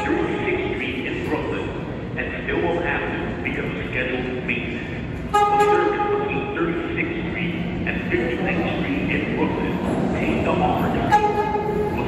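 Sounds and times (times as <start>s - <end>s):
subway train horn toot: 0.0s - 0.5s, 5.2s - 6.6s, 10.8s - 12.0s.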